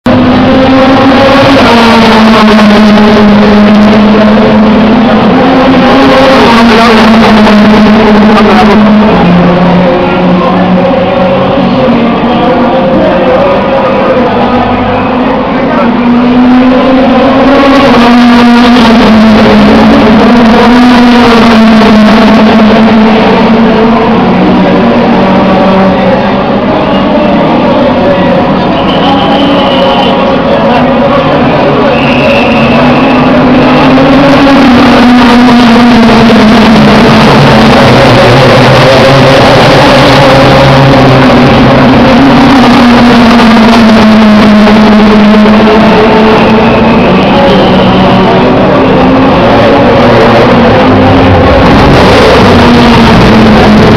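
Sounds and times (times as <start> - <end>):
race car engine at high revs: 0.0 - 53.9.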